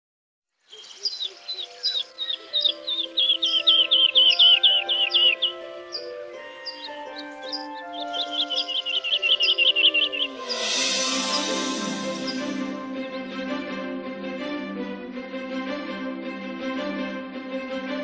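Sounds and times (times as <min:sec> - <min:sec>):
birds chirping: 0:00.6 - 0:13.3
soft music of held chords: 0:01.1 - 0:18.0.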